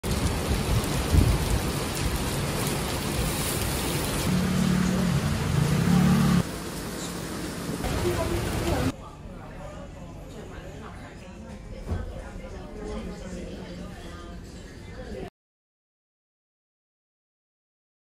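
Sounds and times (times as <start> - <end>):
heavy rain pouring: 0.0 - 8.9
tyres hissing on wet road: 0.5 - 8.9
vehicle engine drone: 4.3 - 8.9.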